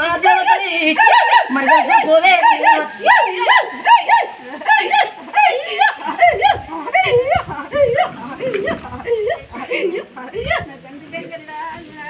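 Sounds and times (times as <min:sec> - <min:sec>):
high-pitched voice crying out: 0:00.4 - 0:09.5.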